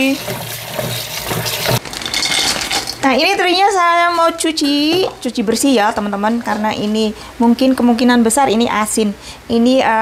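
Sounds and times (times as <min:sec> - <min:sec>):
tap running into basin of water: 0:00.0 - 0:01.8.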